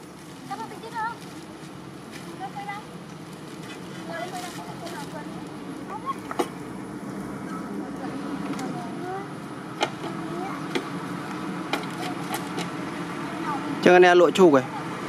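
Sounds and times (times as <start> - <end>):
distant people's voices: 0.0 - 15.0.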